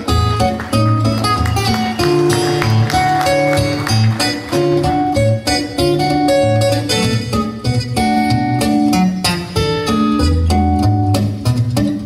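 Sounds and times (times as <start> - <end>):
plucked guitar melody: 0.0 - 12.0.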